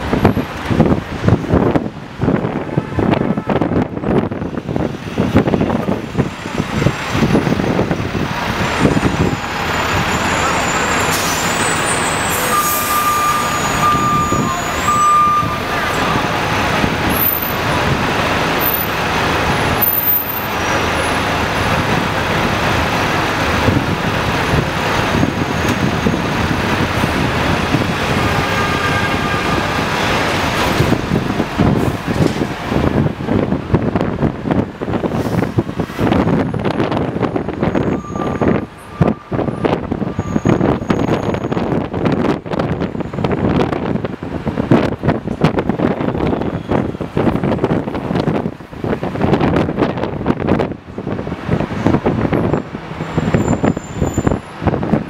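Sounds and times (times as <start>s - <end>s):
bus engine running: 0.0s - 55.0s
city street traffic: 0.0s - 55.0s.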